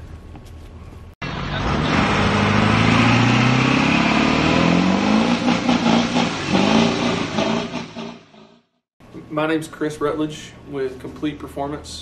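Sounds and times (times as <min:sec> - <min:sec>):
engine accelerating and revving: 0:01.2 - 0:08.7.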